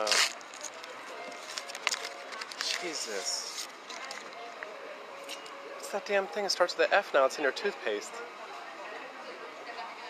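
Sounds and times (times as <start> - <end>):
faint outdoor background noise: 0.0 - 10.0
man talking: 5.8 - 8.2.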